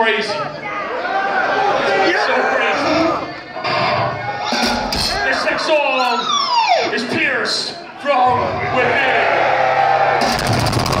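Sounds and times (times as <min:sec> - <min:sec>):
rapid drum hits: 0:10.2 - 0:11.0.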